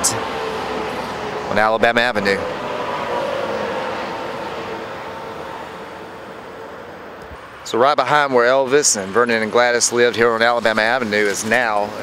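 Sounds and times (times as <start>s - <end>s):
truck and trailer driving past: 0.0s - 12.0s.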